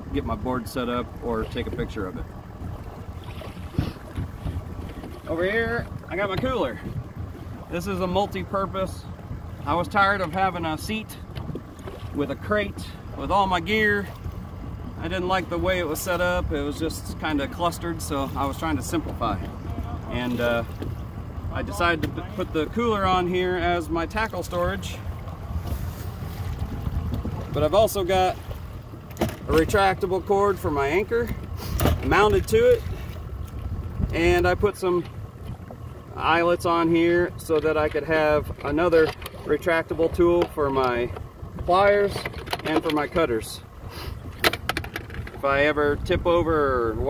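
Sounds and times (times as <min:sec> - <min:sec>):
wind buffeting microphone: 0:00.0 - 0:36.5, 0:38.1 - 0:47.0.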